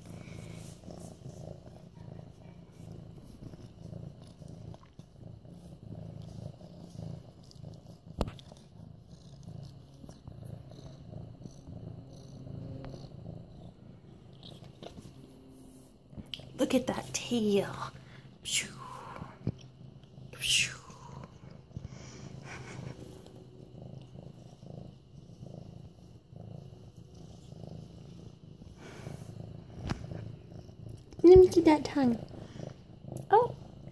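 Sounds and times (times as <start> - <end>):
kitten purring: 0.0 - 33.9.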